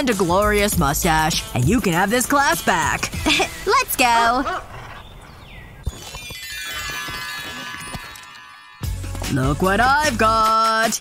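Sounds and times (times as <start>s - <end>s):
chiming held tones: 5.8s - 9.1s.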